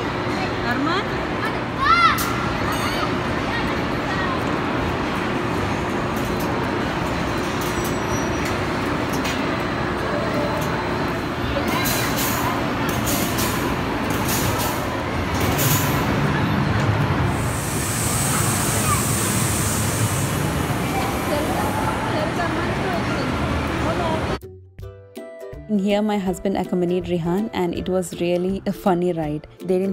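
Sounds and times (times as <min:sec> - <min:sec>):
amusement ride din: 0:00.0 - 0:24.4
voices: 0:09.9 - 0:24.4
compressed air hiss: 0:17.3 - 0:21.4.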